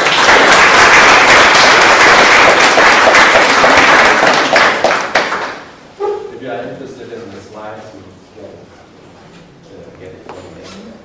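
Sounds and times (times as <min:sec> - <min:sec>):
audience applauding: 0:00.0 - 0:05.7.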